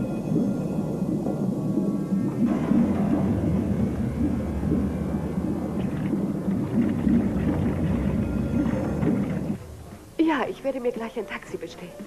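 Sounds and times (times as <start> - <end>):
deep underwater rumble: 0.0 - 10.2.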